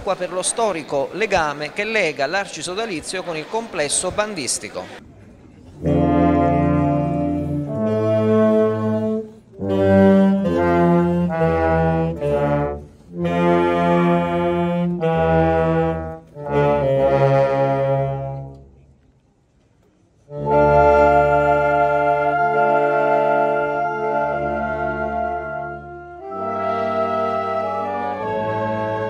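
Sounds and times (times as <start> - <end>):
wind band playing slow chords: 5.6 - 18.9, 20.2 - 29.0.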